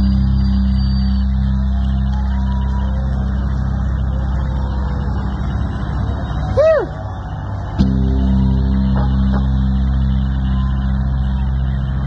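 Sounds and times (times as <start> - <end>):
rock band sustained chord: 7.8 - 12.0.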